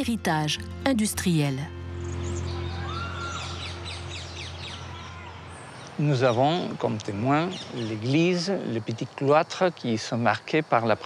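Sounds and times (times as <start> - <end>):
small birds chirping: 2.0 - 11.0.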